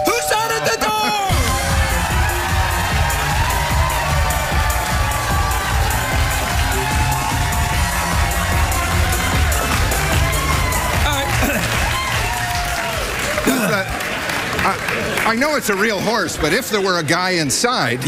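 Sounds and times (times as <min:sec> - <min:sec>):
audience cheering: 0:00.0 - 0:16.3
loud dance music with bass beat: 0:01.2 - 0:12.2.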